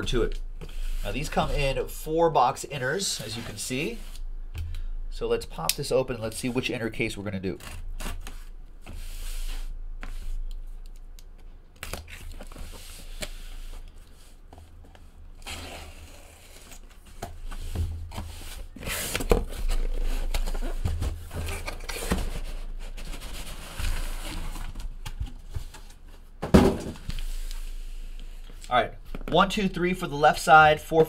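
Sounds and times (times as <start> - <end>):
cardboard flaps scraping and rustling: 15.4 - 26.2.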